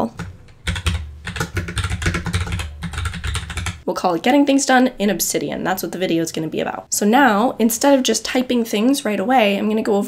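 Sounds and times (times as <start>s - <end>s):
typing on computer keyboard: 0.0s - 3.8s.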